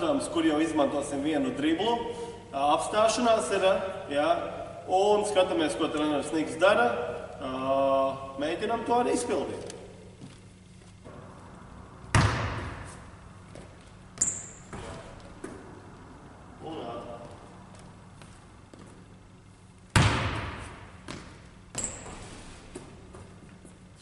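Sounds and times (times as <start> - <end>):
basketball bouncing on hardwood floor: 12.1 - 15.8, 19.9 - 23.3
sneaker squeaking on court: 12.1 - 15.8, 20.0 - 23.4.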